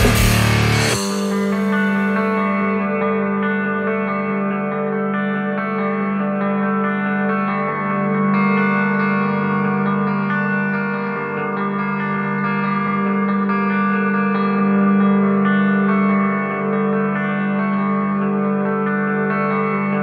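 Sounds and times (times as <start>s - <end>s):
steady low drone: 0.0s - 2.8s
electric guitar with reverb: 0.0s - 20.0s.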